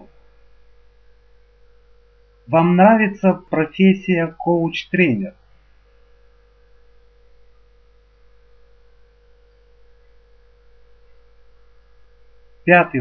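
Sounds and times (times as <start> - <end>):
faint mains hum: 0.0 - 13.0.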